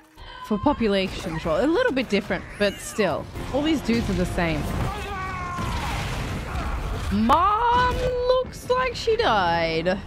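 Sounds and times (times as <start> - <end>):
rumbling explosions and fire: 0.6 - 10.0.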